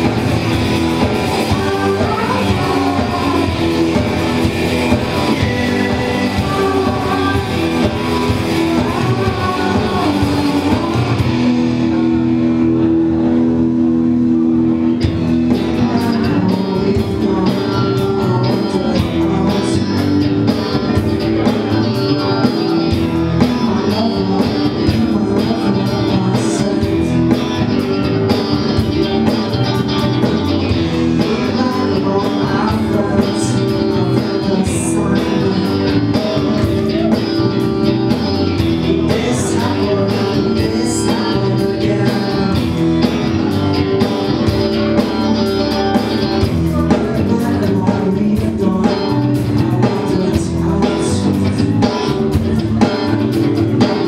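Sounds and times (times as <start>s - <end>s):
drum kit: 0.0s - 54.0s
electric bass: 0.0s - 54.0s
electric guitar: 0.0s - 54.0s.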